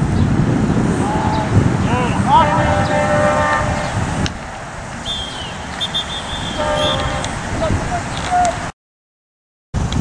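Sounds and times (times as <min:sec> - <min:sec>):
wind rumble on microphone: 0:00.0 - 0:08.7, 0:09.8 - 0:10.0
horn steady note: 0:02.3 - 0:04.2, 0:05.1 - 0:07.4.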